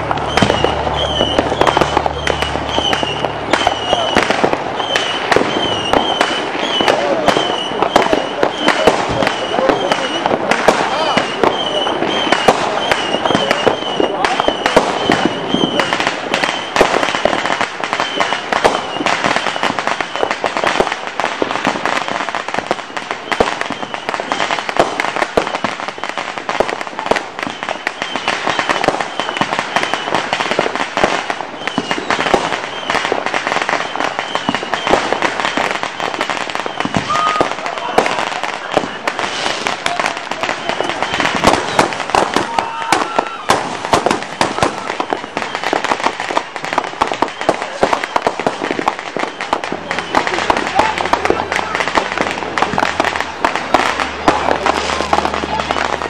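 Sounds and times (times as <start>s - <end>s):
firecrackers crackling: 0.0s - 56.0s.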